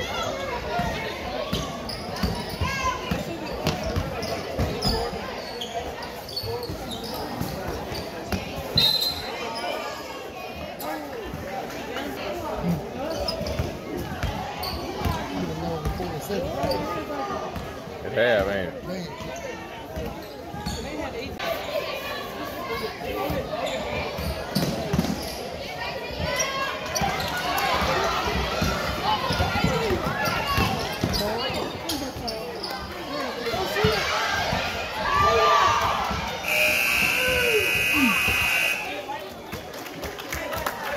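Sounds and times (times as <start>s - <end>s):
players and spectators voices: 0.0s - 40.9s
basketball bouncing on court: 1.5s - 5.0s
scoreboard buzzer: 36.4s - 39.0s.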